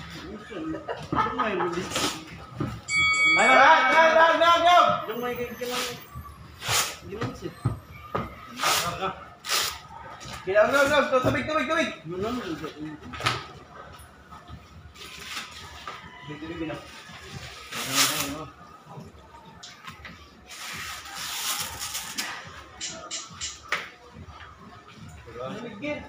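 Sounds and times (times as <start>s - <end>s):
rustling: 20.5s - 22.4s.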